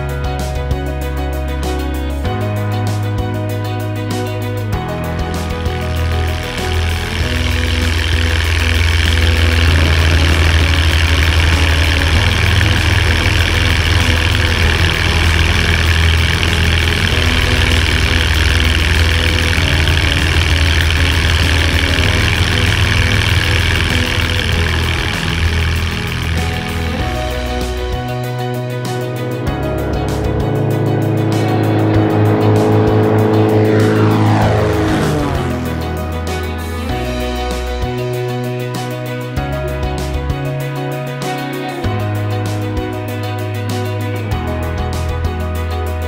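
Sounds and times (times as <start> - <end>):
background music: 0.0 - 46.0
light aircraft engine at full power: 4.9 - 38.0
rush of airflow: 29.4 - 36.9.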